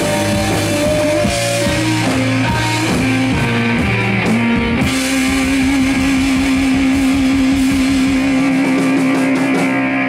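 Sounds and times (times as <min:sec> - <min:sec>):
live rock band playing: 0:00.0 - 0:10.0
sustained electric guitar note: 0:00.0 - 0:10.0.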